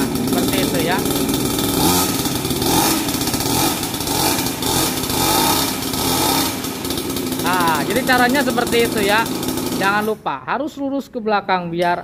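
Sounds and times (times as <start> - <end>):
small two-stroke engine running: 0.0 - 10.3.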